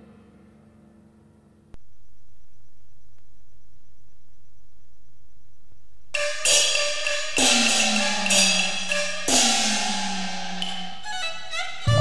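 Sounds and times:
cymbal strikes: 0:06.2 - 0:12.0.

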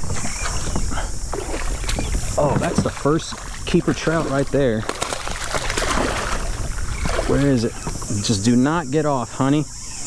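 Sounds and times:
fish splashing at water surface: 0:01.3 - 0:07.6.

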